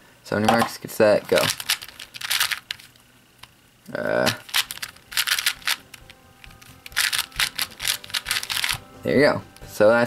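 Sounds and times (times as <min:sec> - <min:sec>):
puzzle cube clicking: 0:01.4 - 0:02.9, 0:04.4 - 0:08.8.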